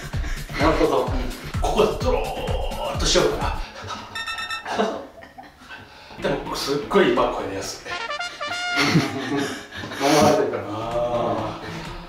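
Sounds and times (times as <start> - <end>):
man chuckling: 1.2 - 5.8, 8.8 - 10.6
ringing electronic tone: 4.1 - 4.8.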